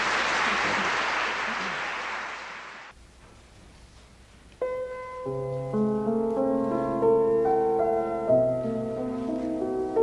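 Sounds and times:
audience applauding: 0:00.0 - 0:02.9.

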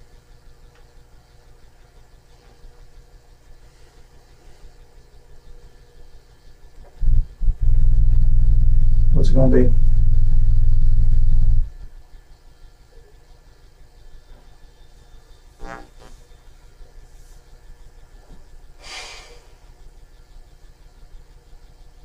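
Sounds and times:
short low sound: 0:07.0 - 0:11.8
loud low rumble: 0:07.0 - 0:11.9.

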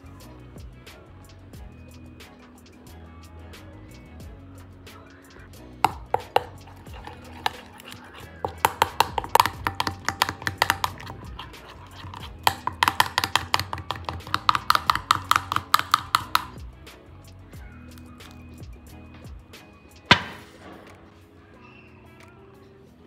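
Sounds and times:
metal spoon clinking glass bowl: 0:05.9 - 0:16.6.

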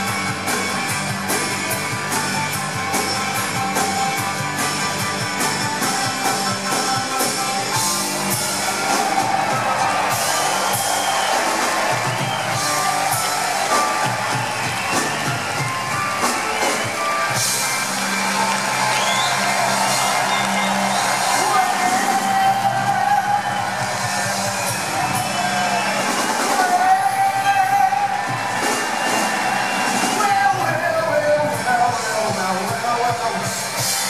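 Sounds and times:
crowd cheering and whooping: 0:00.0 - 0:31.8
live rock band playing: 0:00.0 - 0:34.0.

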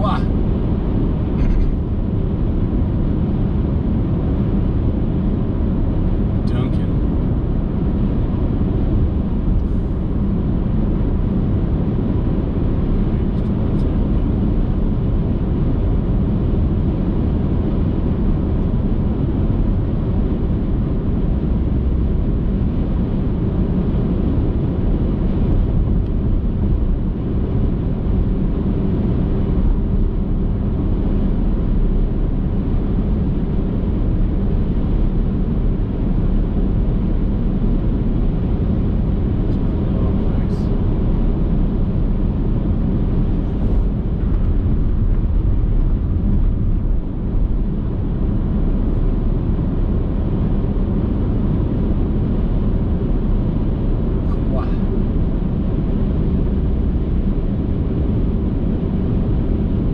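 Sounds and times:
car driving at highway speed: 0:00.0 - 0:59.9.

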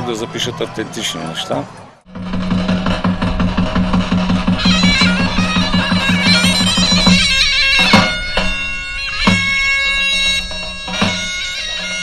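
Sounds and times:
drum-like pulse: 0:02.1 - 0:08.6
folk wind instruments melody: 0:03.2 - 0:12.0.

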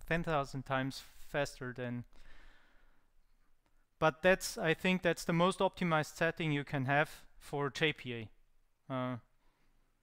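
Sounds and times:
person exhaling a breath: 0:02.1 - 0:03.1.

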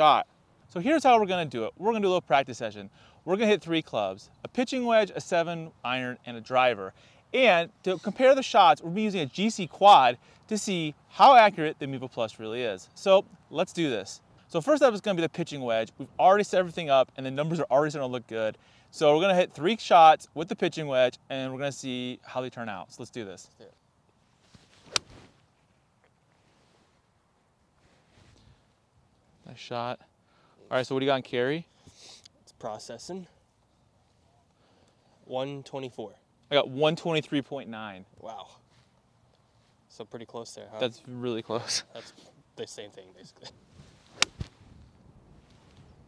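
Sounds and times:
swish of golf swing: 0:24.4 - 0:25.4, 0:43.8 - 0:44.8
golf club striking ball: 0:24.9 - 0:25.2, 0:44.2 - 0:44.5.

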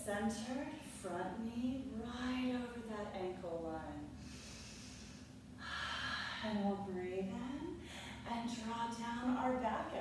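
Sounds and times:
woman breathing: 0:04.2 - 0:06.4, 0:07.8 - 0:08.3.

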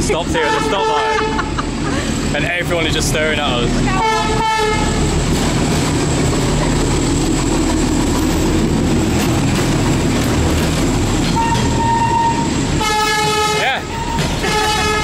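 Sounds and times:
diesel locomotive rumbling past: 0:00.0 - 0:15.0
train horn: 0:00.3 - 0:01.6, 0:04.0 - 0:05.1, 0:11.4 - 0:15.0.

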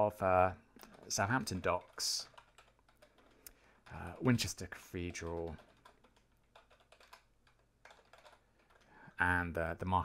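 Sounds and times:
typing on computer keyboard: 0:00.8 - 0:09.0.

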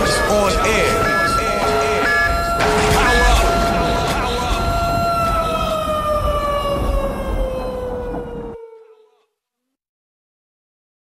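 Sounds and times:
siren-like electronic tone: 0:00.0 - 0:08.6
low rumble: 0:00.9 - 0:08.5.

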